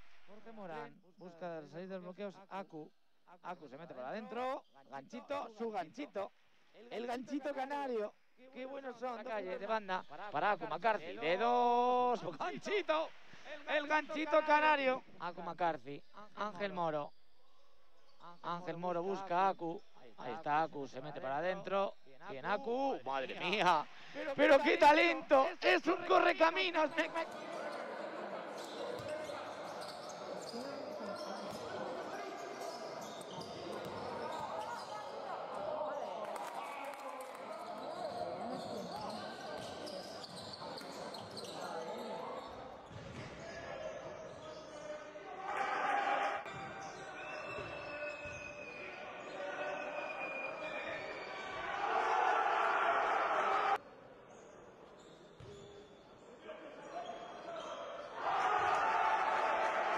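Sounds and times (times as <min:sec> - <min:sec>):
basketball bouncing on court: 0:32.6 - 0:35.1, 0:42.5 - 0:43.6.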